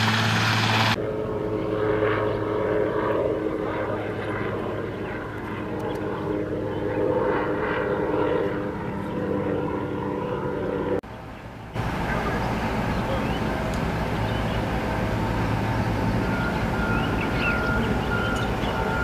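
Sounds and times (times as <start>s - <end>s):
aircraft engine drone: 0.0s - 19.0s.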